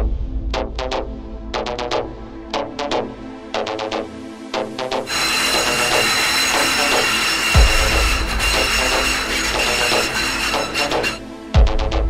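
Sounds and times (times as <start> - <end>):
train wheels rumbling on rail: 5.1 - 11.2
high wheel squealing: 5.1 - 11.3.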